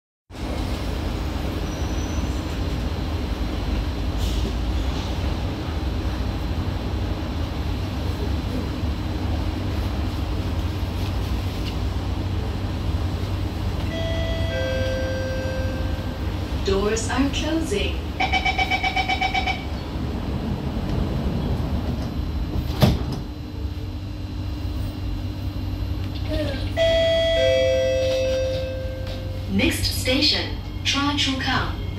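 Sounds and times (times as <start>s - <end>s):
train ventilation hum: 0.3s - 31.9s.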